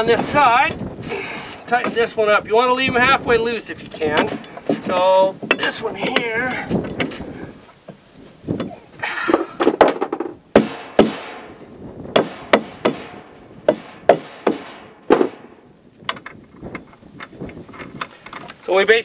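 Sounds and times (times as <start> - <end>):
metal hardware clanking: 0.0 - 7.5, 8.6 - 18.8.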